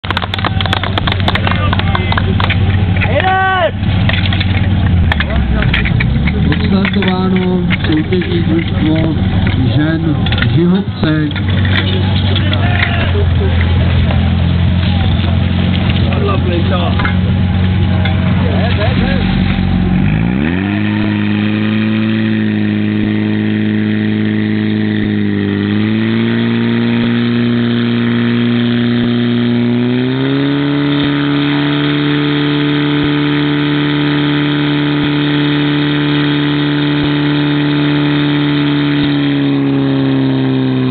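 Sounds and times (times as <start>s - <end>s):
pump engine running: 0.0s - 40.9s.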